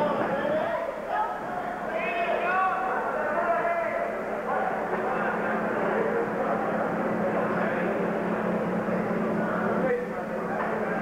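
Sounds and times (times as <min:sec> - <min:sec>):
crowd voices hubbub: 0:00.0 - 0:11.0.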